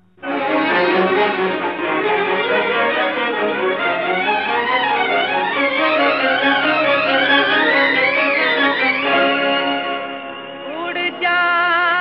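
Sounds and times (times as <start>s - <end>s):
violins playing gliding melody: 0.2s - 11.4s
orchestral film song introduction: 0.2s - 12.0s.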